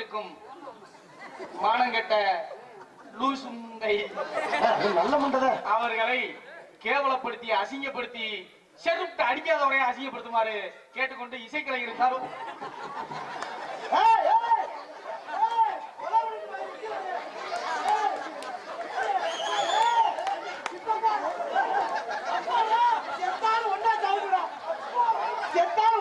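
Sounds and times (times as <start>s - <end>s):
performers shouting: 13.7s - 26.0s.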